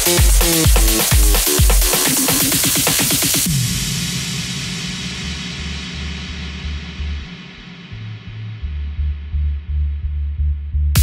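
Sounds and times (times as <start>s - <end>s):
pulsing low bass line: 3.5s - 11.0s.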